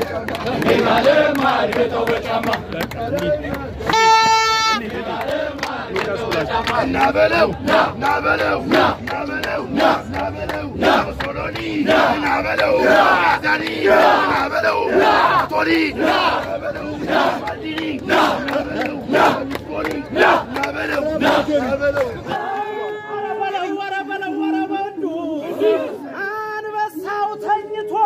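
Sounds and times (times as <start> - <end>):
men shouting rhythmic war chant: 0.0 - 3.8, 4.8 - 23.8, 25.1 - 27.0
sharp hand claps: 17.4 - 22.2.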